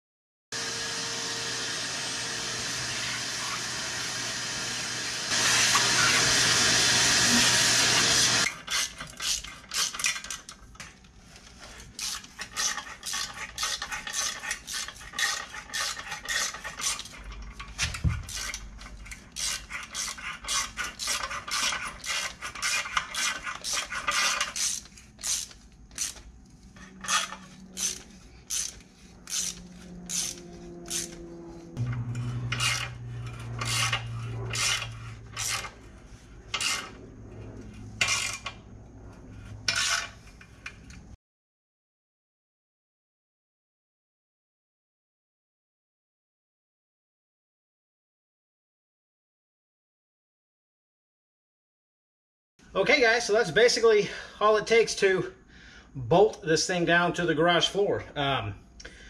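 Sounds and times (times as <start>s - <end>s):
power drill running: 0.6s - 8.5s
ratchet wrench clicking: 8.7s - 10.5s, 12.0s - 17.1s, 18.3s - 26.3s, 27.1s - 31.2s.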